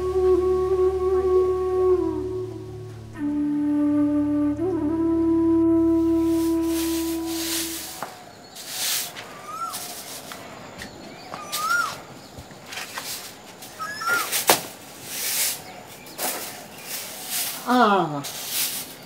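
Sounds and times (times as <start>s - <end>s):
held flute note: 0.0s - 8.2s
rising-and-falling chirps: 4.2s - 12.4s, 13.7s - 14.3s
hissing swishes: 6.2s - 10.5s, 12.9s - 19.0s.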